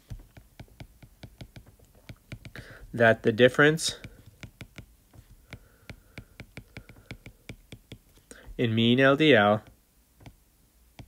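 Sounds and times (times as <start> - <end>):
stylus tapping on glass screen: 0.0 - 2.7, 3.9 - 8.6, 9.6 - 10.4.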